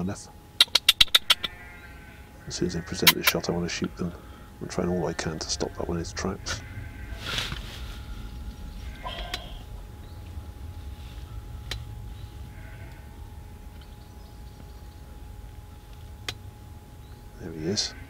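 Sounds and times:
steady low rumble: 0:00.0 - 0:18.0
sharp clicks: 0:00.6 - 0:01.5
faint bird chirps: 0:07.8 - 0:13.0.

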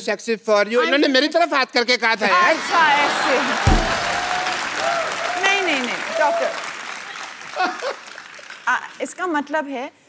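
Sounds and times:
audience applauding: 0:02.4 - 0:09.2
low thump: 0:03.7 - 0:04.5.

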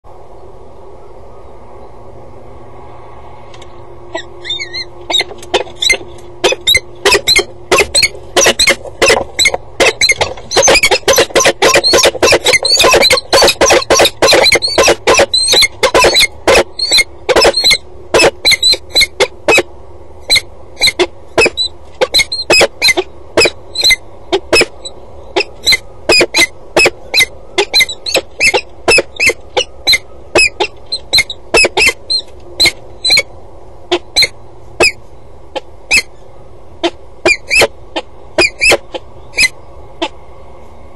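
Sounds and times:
steady low hum: 0:00.1 - 0:40.9
falcons calling: 0:04.1 - 0:33.3, 0:33.9 - 0:40.2.

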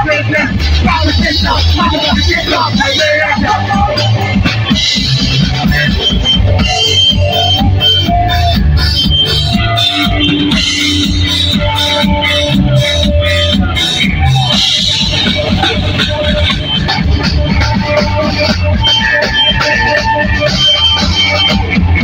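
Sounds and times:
drum kit: 0:00.0 - 0:22.0
electric guitars: 0:00.0 - 0:22.0.

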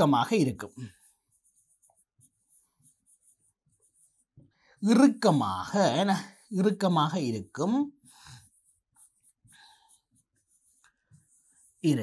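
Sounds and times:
stylus scratching on pen tablet: 0:00.0 - 0:12.0.

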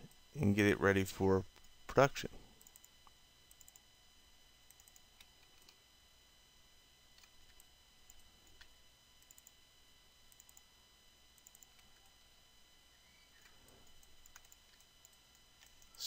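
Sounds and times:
mouse and keyboard clicks: 0:13.4 - 0:15.9.

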